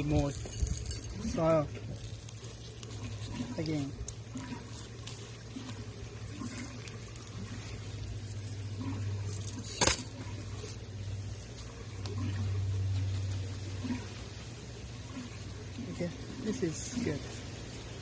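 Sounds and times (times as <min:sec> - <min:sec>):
soil trickling into plastic pot: 0:00.0 - 0:18.0
steady low hum: 0:00.0 - 0:18.0.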